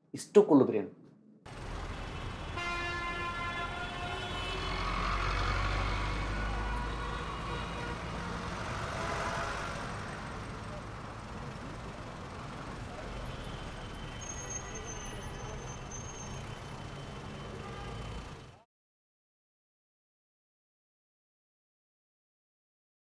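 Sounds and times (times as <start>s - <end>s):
vehicles rumbling past: 1.5s - 18.6s
vehicle horn: 2.0s - 5.0s, 5.7s - 8.4s, 17.4s - 18.4s.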